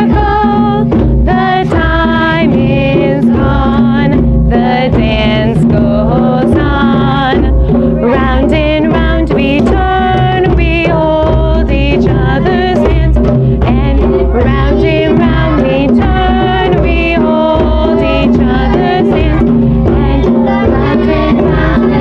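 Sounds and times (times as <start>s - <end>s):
children singing in unison: 0.0s - 22.0s
djembe hand drums: 0.0s - 22.0s.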